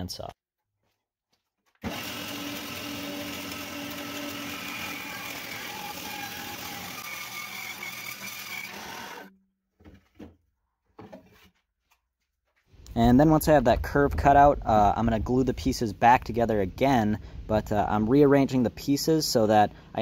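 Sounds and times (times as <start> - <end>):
bandsaw cutting wood: 1.8 - 9.3.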